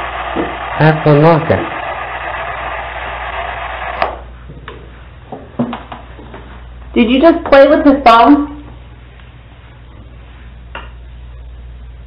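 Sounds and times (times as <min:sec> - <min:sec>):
static hiss: 0:00.0 - 0:04.4.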